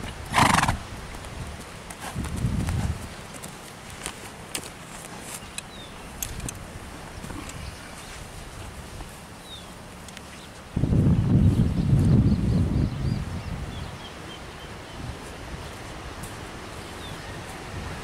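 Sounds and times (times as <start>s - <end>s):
soft hoofbeats on grass: 0.0s - 18.0s
horse blowing: 0.3s - 0.8s.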